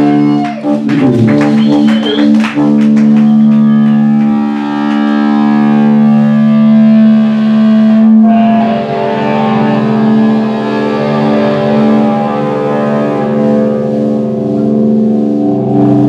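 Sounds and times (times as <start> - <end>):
distorted electric guitars ringing chord: 0.0 - 16.0.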